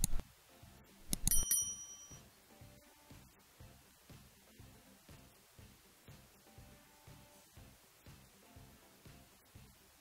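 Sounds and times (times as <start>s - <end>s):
high bell ding: 1.3s - 2.2s.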